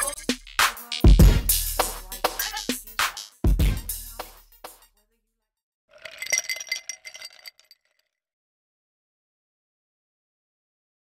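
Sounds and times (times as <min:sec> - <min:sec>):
glass clinking: 0:06.0 - 0:08.0.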